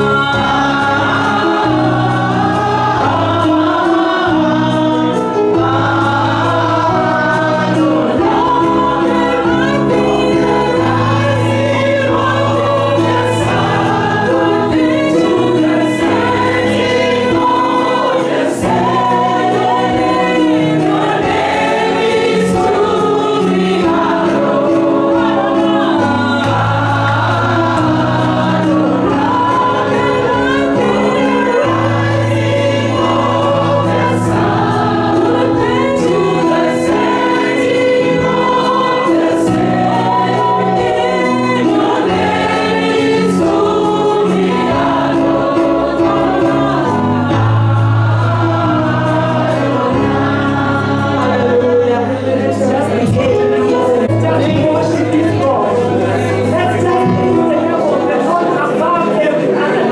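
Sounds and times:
women singing gospel song: 0:00.0 - 0:59.9.

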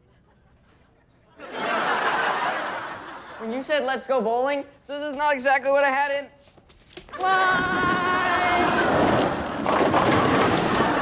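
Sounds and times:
studio audience laughter: 0:00.0 - 0:03.6, 0:10.4 - 0:11.0.

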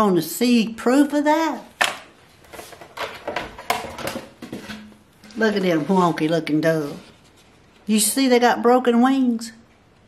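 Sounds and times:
wooden board knocks and clatters: 0:02.8 - 0:04.9.

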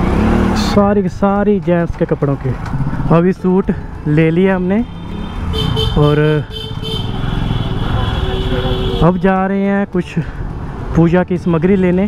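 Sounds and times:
motorcycle engine running: 0:00.0 - 0:08.3.

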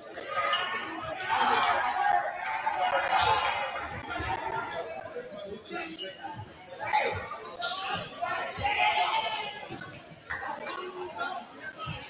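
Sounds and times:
chatter of many people: 0:00.0 - 0:12.0.

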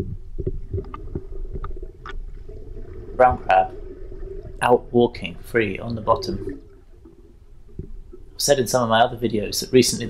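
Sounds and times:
faint clicks: 0:00.0 - 0:03.1
muffled underwater rumble: 0:00.0 - 0:10.0.

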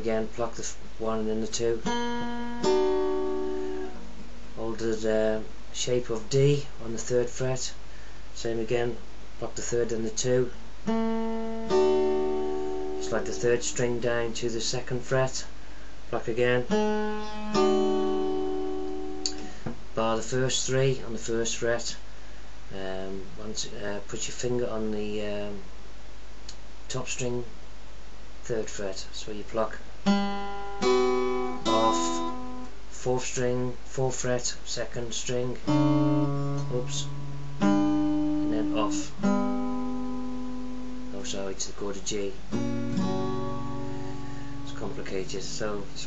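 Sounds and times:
fingerpicked acoustic guitar: 0:00.0 - 0:05.4, 0:09.6 - 0:15.4, 0:16.2 - 0:21.2, 0:30.0 - 0:32.8, 0:35.2 - 0:46.0.

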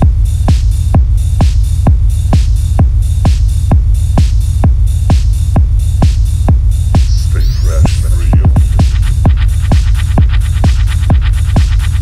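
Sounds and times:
four-on-the-floor kick drum: 0:00.0 - 0:12.0
heavy continuous bass: 0:00.0 - 0:12.0
hi-hat hiss: 0:06.3 - 0:12.0.

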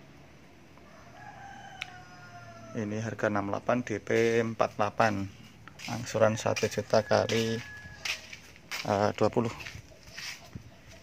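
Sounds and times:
rooster crowing faintly: 0:00.8 - 0:03.4, 0:05.9 - 0:08.9.

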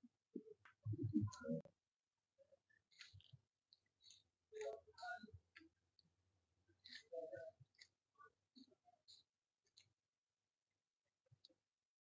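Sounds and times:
small handling noises: 0:02.6 - 0:10.3.

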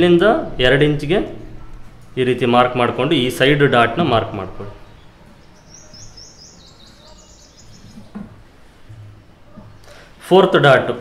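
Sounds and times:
small bird chirping: 0:04.7 - 0:08.2.

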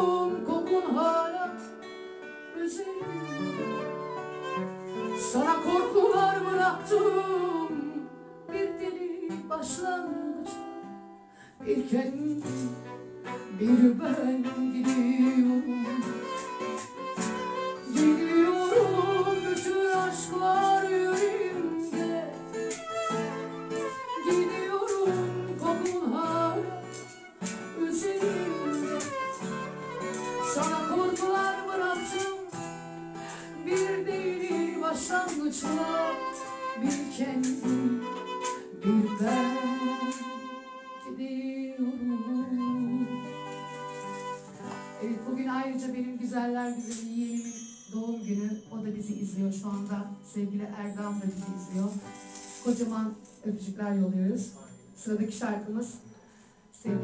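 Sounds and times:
woman singing: 0:00.0 - 0:01.8, 0:02.5 - 0:04.3, 0:05.0 - 0:56.1, 0:56.8 - 0:57.0
violin: 0:00.0 - 0:09.8, 0:11.7 - 0:45.4
strummed acoustic guitar: 0:00.0 - 0:47.5, 0:48.6 - 0:53.7, 0:55.8 - 0:57.0.

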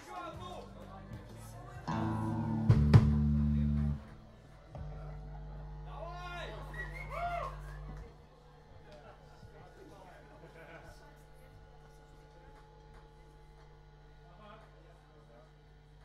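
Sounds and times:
electric bass and guitar notes: 0:00.6 - 0:08.2.

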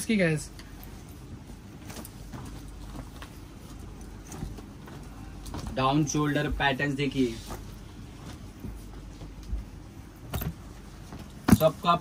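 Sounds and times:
low steady hum: 0:00.0 - 0:12.0
t-shirts rustling: 0:00.0 - 0:12.0.

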